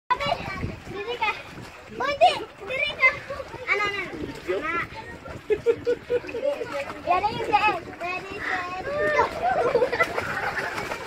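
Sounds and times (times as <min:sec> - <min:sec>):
people talking and exclaiming: 0:00.1 - 0:11.0.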